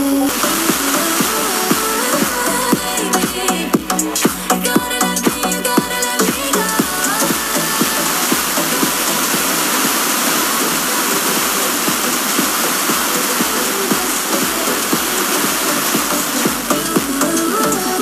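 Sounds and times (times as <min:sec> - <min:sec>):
faint radio music: 0:00.0 - 0:18.0
radio static hiss: 0:00.0 - 0:18.0.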